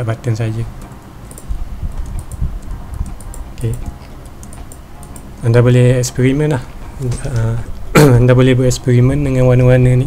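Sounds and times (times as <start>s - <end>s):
dull low knocks: 0.7s - 5.4s
keyboard and mouse clicks: 0.8s - 5.3s.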